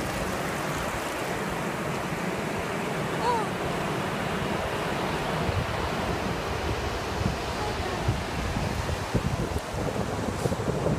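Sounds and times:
ocean surf washing over sand: 0:00.0 - 0:10.9
wind buffeting microphone: 0:04.2 - 0:10.9.

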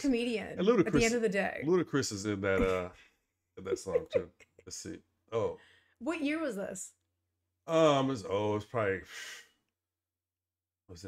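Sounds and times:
person speaking: 0:00.0 - 0:01.2, 0:03.7 - 0:04.8.

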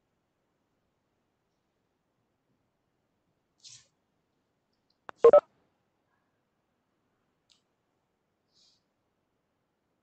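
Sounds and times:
short electronic beeps: 0:05.1 - 0:05.4.

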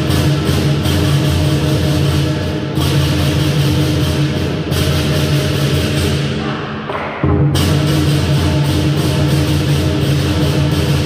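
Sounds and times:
cymbals clashing: 0:00.0 - 0:11.0
large drum beating: 0:00.0 - 0:11.0.

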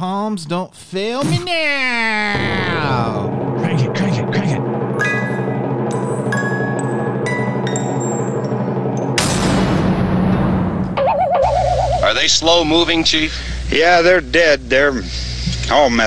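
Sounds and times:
timpani: 0:02.3 - 0:12.7
warbling tone: 0:02.4 - 0:09.3, 0:10.7 - 0:13.2
rushing swell: 0:02.4 - 0:13.8
steady low tones: 0:02.4 - 0:16.0
ringing chime-like notes: 0:04.9 - 0:09.2.

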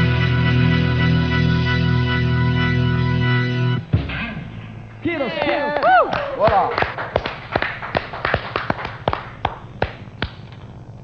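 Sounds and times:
sparse handclaps: 0:05.4 - 0:10.5.

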